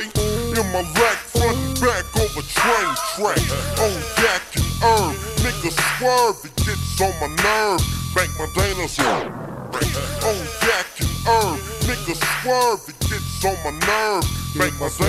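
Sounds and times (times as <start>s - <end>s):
deep pitched-down rap vocal: 0.0s - 15.0s
slowed hip hop track: 0.0s - 15.0s.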